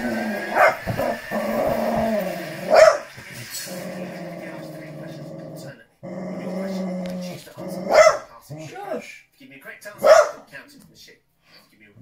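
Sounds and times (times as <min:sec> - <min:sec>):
dog growling: 0:00.0 - 0:09.0
dog barking: 0:00.5 - 0:01.0, 0:02.7 - 0:03.1, 0:07.9 - 0:08.4, 0:10.0 - 0:10.5.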